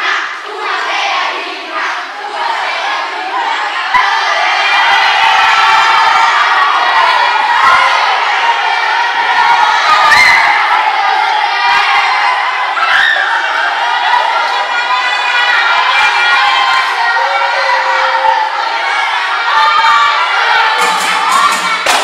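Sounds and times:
children shouting and cheering: 0.0s - 22.0s.

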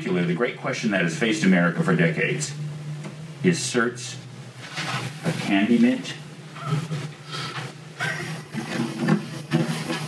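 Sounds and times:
person speaking: 5.2s - 8.5s.

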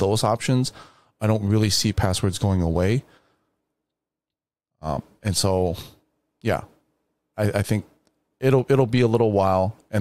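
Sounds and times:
man speaking: 0.0s - 3.1s, 4.8s - 6.8s, 7.4s - 10.0s.

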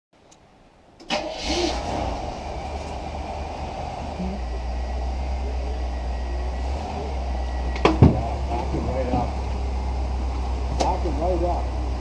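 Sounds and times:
car engine starting and rumbling: 0.2s - 12.0s.

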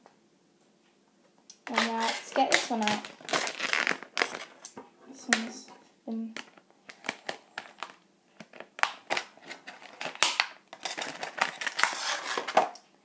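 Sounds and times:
plastic packaging clicking and crinkling: 1.5s - 5.6s, 6.2s - 12.9s.

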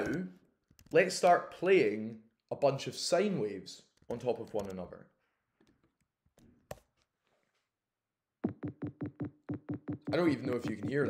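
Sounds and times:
fast low beeps: 8.4s - 11.0s.

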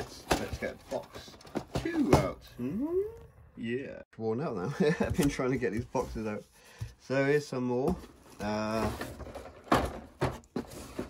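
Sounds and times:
cardboard boxes knocking and sliding: 0.0s - 2.4s, 7.8s - 11.0s.

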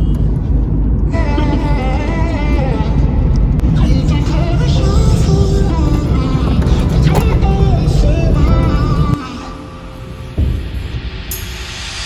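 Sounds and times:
car road noise: 0.0s - 12.0s
music with heavy bass: 0.0s - 12.0s.

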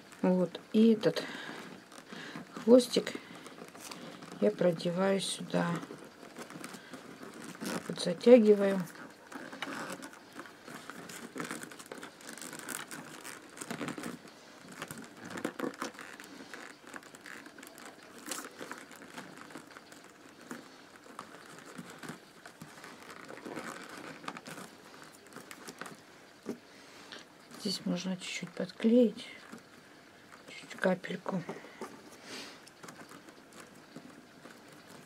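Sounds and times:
newspaper tubes rustling: 0.0s - 35.0s
paper strands clicking and scraping: 0.0s - 35.0s.

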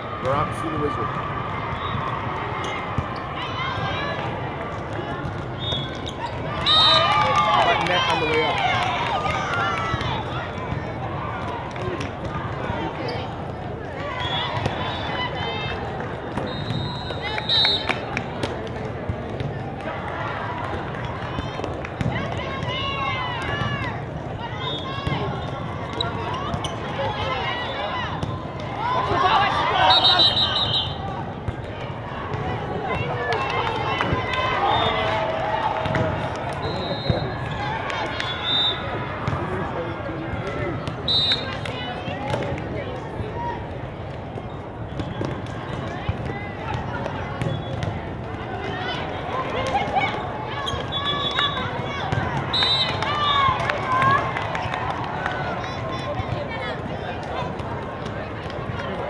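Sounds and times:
players shouting calls: 0.0s - 18.2s, 19.8s - 43.7s, 44.6s - 59.0s
hall chatter: 0.0s - 59.0s
short whistle blasts: 16.4s - 17.9s, 29.8s - 31.0s, 36.6s - 37.4s, 38.2s - 38.9s, 41.1s - 41.5s, 52.5s - 53.0s.

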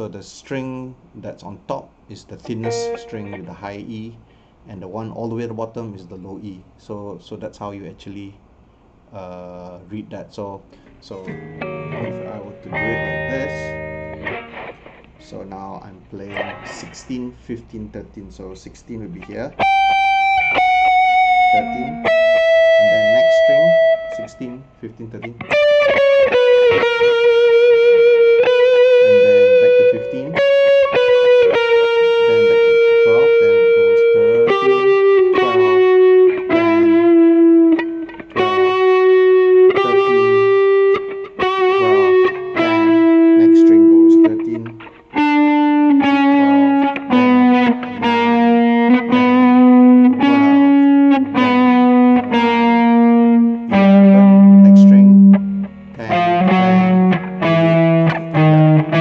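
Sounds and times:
distorted electric guitar notes: 2.4s - 3.8s, 11.1s - 17.3s, 19.1s - 59.0s.

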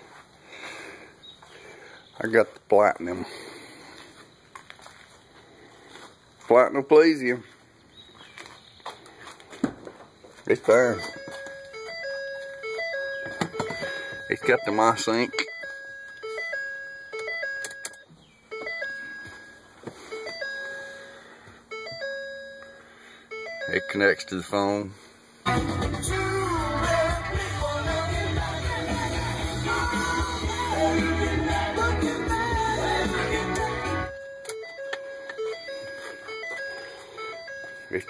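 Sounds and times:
electronic warning chime: 10.6s - 24.8s, 33.1s - 38.0s
rock music with singing: 25.5s - 34.2s.

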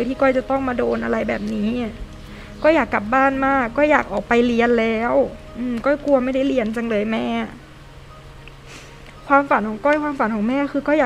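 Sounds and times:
woman reading aloud: 0.0s - 2.0s, 2.6s - 7.6s, 9.3s - 11.0s.

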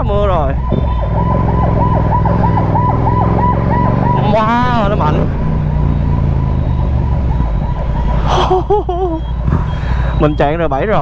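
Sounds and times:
motorcycle engine rumbling: 0.0s - 11.0s.

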